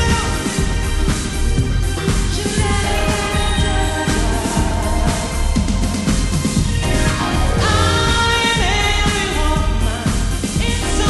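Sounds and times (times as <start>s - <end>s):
pop backing track with bass beat: 0.0s - 11.0s
singer with sliding long notes: 0.0s - 11.0s.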